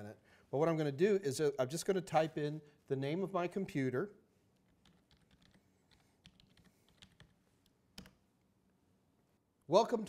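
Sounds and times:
keyboard typing: 0:04.6 - 0:07.4.

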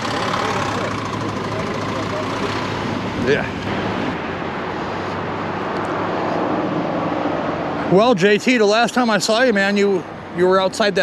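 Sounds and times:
cars passing: 0:00.0 - 0:11.0
heavy road traffic: 0:00.0 - 0:11.0.

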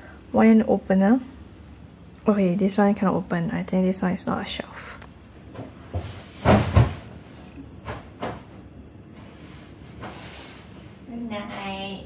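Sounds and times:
heavy thumps on mattress: 0:05.5 - 0:08.6.

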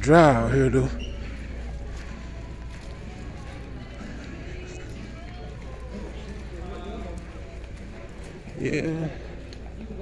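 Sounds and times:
distant voices: 0:00.0 - 0:10.0
footsteps on tiled floor: 0:00.9 - 0:10.0.

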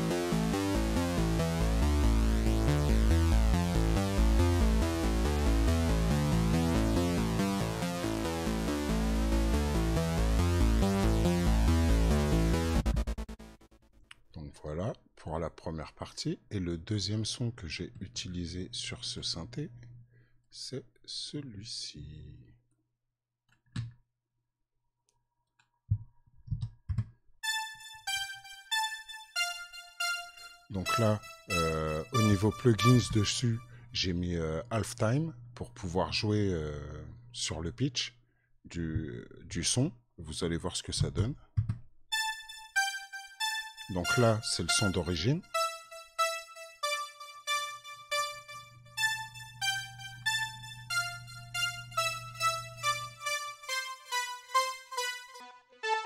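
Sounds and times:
synthesizer melody of bright notes: 0:00.0 - 0:13.6, 0:27.4 - 0:33.8, 0:42.1 - 0:56.0
low synth thumps: 0:01.2 - 0:13.6
electric piano-like synth notes: 0:42.2 - 0:56.0.

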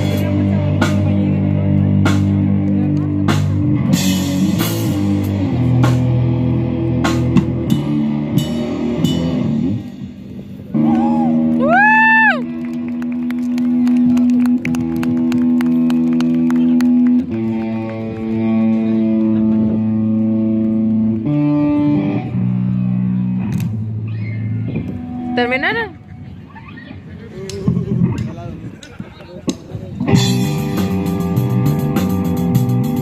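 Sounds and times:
live punk band playing: 0:00.0 - 0:12.0, 0:30.0 - 0:33.0
ringing guitar chords: 0:16.9 - 0:25.9.

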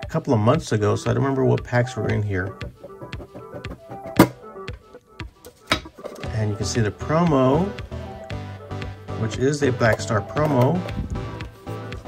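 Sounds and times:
background music: 0:00.0 - 0:12.0
metal lid thunk coming free: 0:03.4 - 0:04.4, 0:05.6 - 0:06.3.

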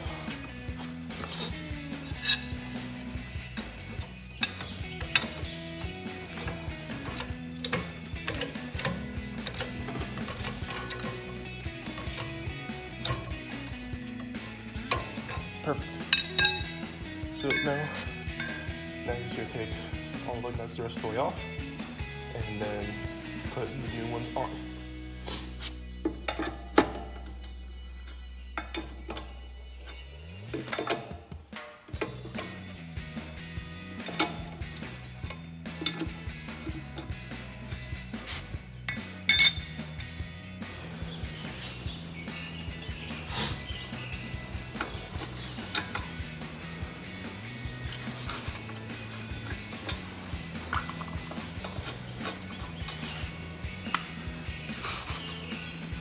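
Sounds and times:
lug wrench and nuts clinking: 0:00.0 - 0:21.6, 0:22.4 - 0:56.0
background music with bass line: 0:00.0 - 0:56.0.

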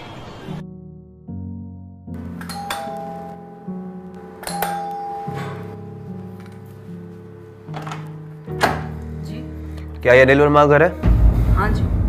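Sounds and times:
background music: 0:00.5 - 0:12.0
doorbell ding-dong chime: 0:02.2 - 0:06.4.

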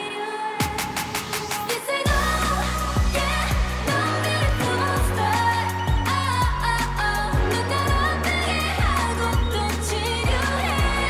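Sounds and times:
pop song with female vocals: 0:00.0 - 0:11.0
drum build-up: 0:00.6 - 0:11.0.

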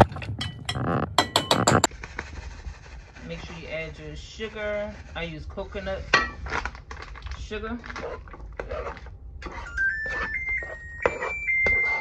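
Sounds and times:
spatula scraping in dish: 0:00.0 - 0:06.7, 0:07.9 - 0:12.0
oven beeps rising in pitch: 0:09.6 - 0:12.0.

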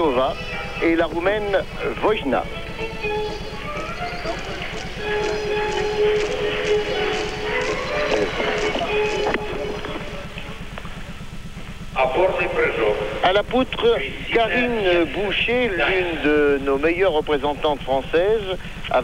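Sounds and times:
crowd murmur: 0:00.0 - 0:17.5
faint music in hall: 0:00.0 - 0:19.0
low electrical buzz: 0:00.0 - 0:19.0.

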